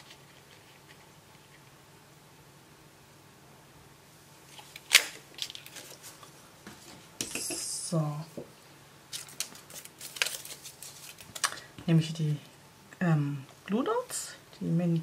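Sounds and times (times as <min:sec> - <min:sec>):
paper rustling: 0:04.5 - 0:07.0, 0:09.1 - 0:11.7.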